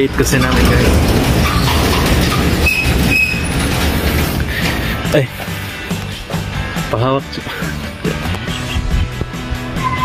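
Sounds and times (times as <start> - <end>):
sliding gate rumbling: 0.0 - 5.1
gate wheel squeals: 0.2 - 4.8, 9.8 - 10.0.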